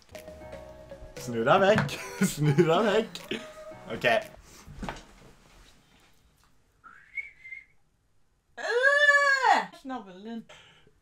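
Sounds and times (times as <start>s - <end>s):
person whistling rising note: 6.8s - 7.8s
high-pitched vocal ooh: 8.6s - 9.7s.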